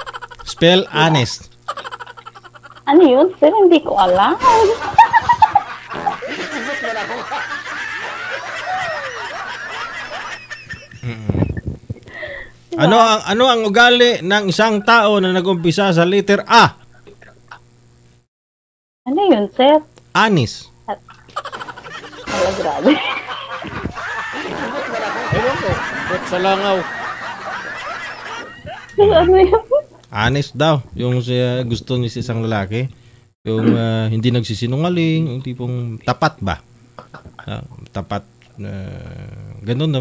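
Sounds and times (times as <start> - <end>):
woman giggling: 1.7 - 7.3, 10.6 - 12.5, 21.0 - 25.8, 28.6 - 29.9
woman's stifled laughter: 21.3 - 25.8, 28.4 - 29.9.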